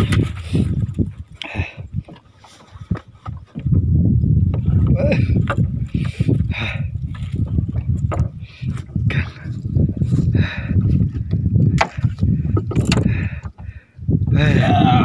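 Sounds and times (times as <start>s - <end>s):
knocks against canoe hull: 11.7s - 13.6s.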